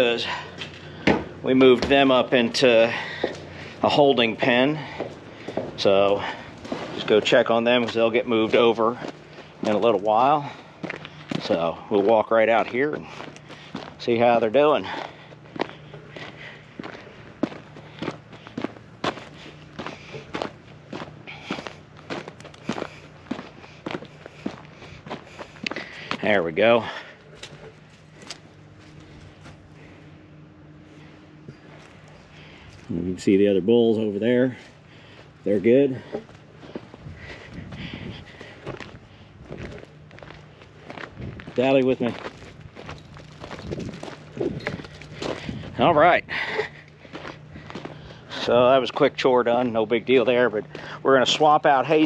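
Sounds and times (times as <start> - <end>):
footsteps walking: 0.0 - 52.0.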